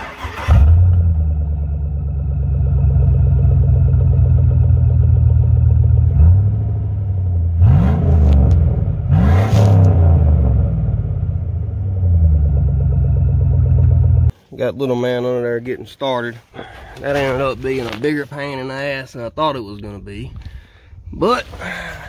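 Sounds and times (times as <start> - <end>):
truck engine idling and revving: 0.0 - 14.3.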